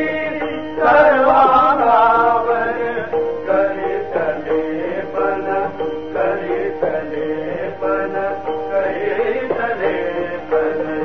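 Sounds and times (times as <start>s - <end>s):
held instrumental notes: 0.0s - 11.0s.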